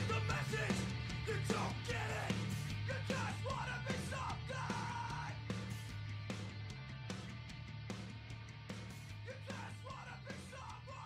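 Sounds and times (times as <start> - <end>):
shouted vocals: 0.0 - 5.4
distorted electric guitar: 0.0 - 11.0
punk band recording: 0.0 - 11.0.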